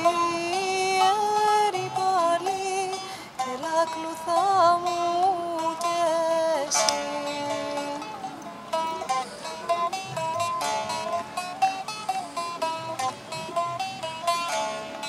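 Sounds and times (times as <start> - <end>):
plucked string folk melody: 0.0 - 15.0
strummed chords: 0.0 - 15.0.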